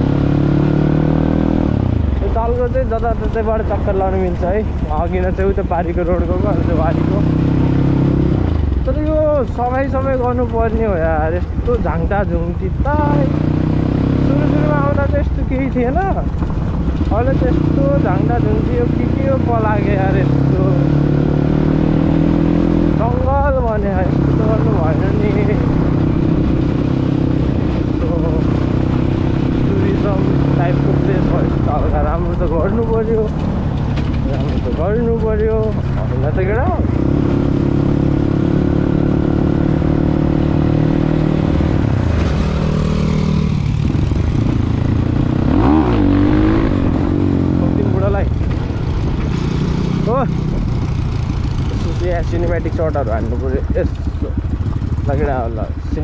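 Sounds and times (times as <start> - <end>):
dirt bike engine running: 0.0 - 56.0.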